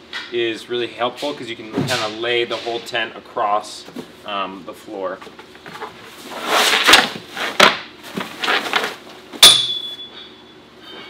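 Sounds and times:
ringing metal clink: 9.4s - 10.5s.

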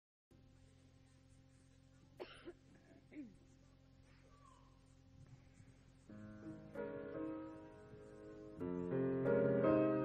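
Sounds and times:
recording hum: 0.3s - 10.0s.

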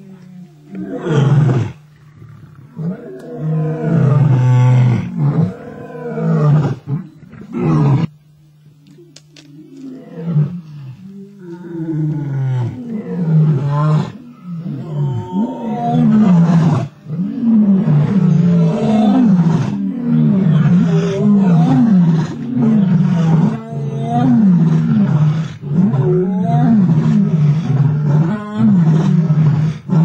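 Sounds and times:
lions growling: 0.0s - 8.1s, 9.5s - 30.0s.

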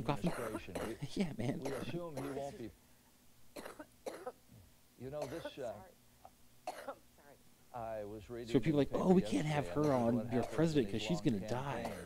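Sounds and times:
person coughing quietly: 0.2s - 2.6s, 3.6s - 4.4s, 5.2s - 5.8s, 6.7s - 7.0s, 11.7s - 12.0s.

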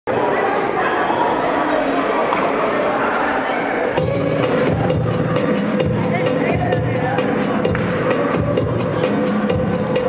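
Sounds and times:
people's voices: 0.1s - 10.0s.

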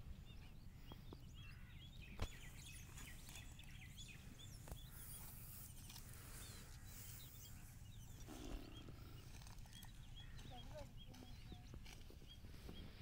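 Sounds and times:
small birds chirping: 0.0s - 13.0s.

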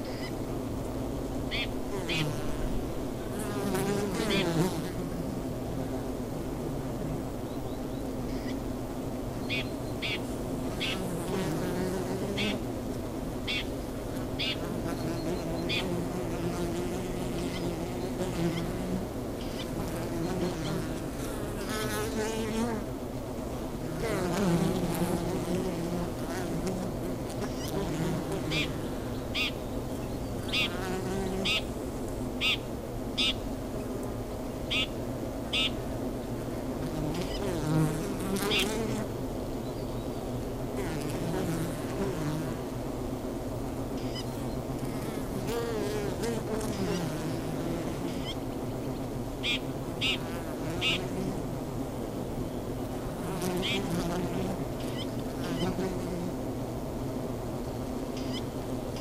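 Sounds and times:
bees humming: 1.3s - 39.1s, 40.1s - 59.0s
bees droning past: 1.4s - 39.3s, 40.6s - 59.0s.

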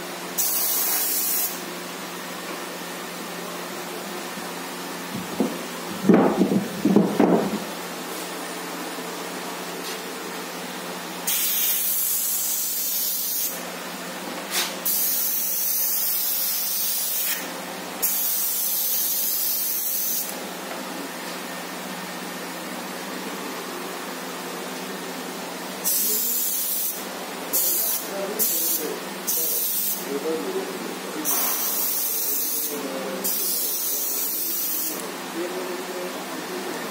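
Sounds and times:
airbrush spraying hiss: 0.4s - 1.6s, 11.3s - 13.6s, 14.5s - 20.4s, 25.9s - 30.0s, 31.2s - 35.0s.

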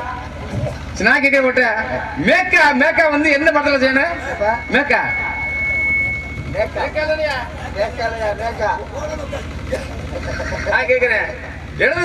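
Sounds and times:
continuous low hum: 0.0s - 12.0s
thin steady high tone: 3.3s - 7.9s.

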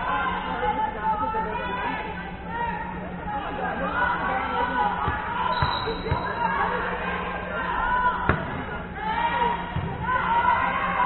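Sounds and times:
players' voices: 0.0s - 11.0s
volleyballs thudding: 5.0s - 6.3s, 8.2s - 8.8s.

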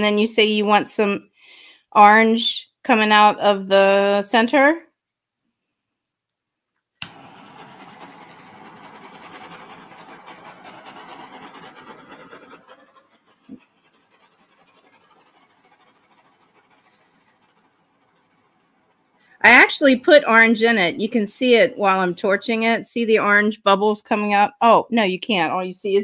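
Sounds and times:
torch ignition click: 7.0s - 12.4s
torch flame hissing: 7.0s - 22.3s.

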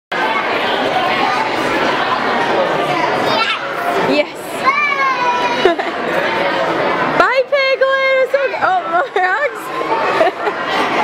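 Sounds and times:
babble of voices: 0.1s - 11.0s.

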